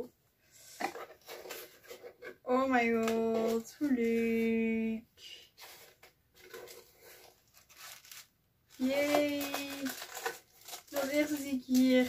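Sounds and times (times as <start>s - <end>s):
cardboard box being opened: 5.6s - 12.0s.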